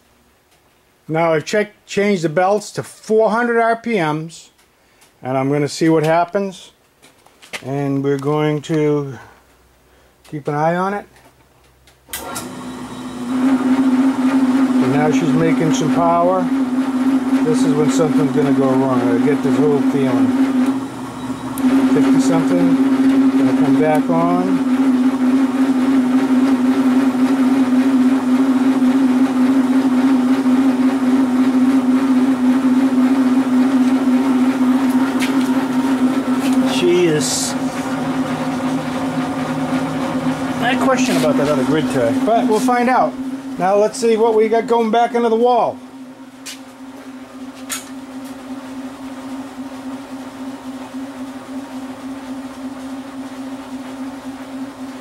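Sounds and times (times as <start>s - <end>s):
generator howl with hum tone: 12.1s - 55.0s.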